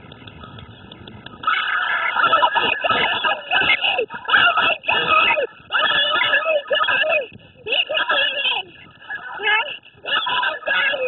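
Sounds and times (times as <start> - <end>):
young men shouting excitedly: 1.4 - 11.0.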